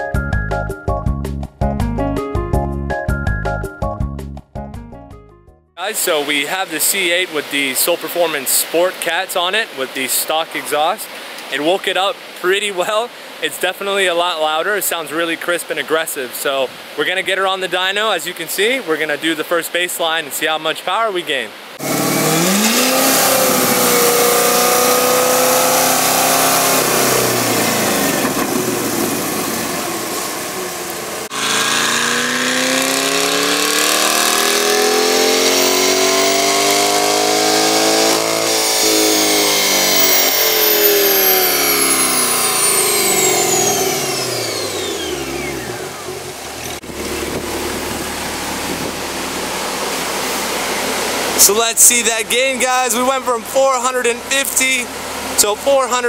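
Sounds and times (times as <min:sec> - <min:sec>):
engine revving on dyno: 0:21.8 - 0:48.8
high whine: 0:21.8 - 0:56.0.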